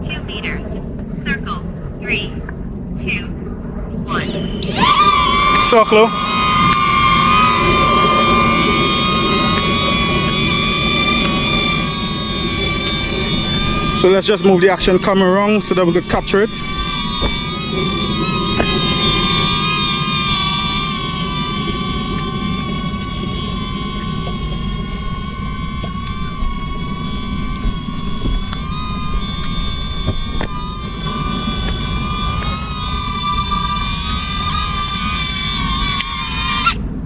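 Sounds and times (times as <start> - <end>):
low rumble: 0.0 - 37.0
drone propellers whining: 4.1 - 37.0.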